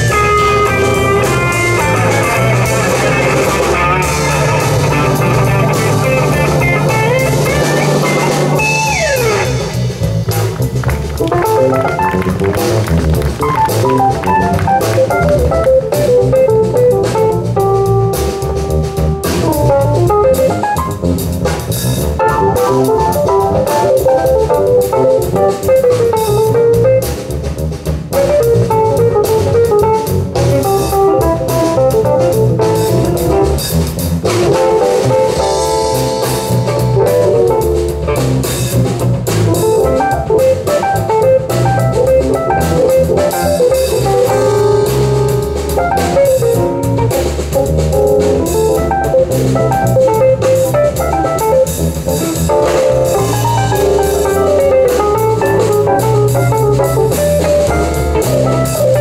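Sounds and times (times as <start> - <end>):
guitar: 0.0 - 27.4, 28.0 - 59.0
bass: 0.0 - 59.0
drum kit: 0.0 - 59.0
keyboard: 0.0 - 59.0.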